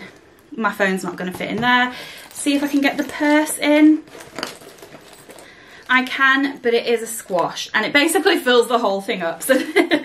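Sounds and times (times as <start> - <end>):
bag rustling: 1.2 - 7.7.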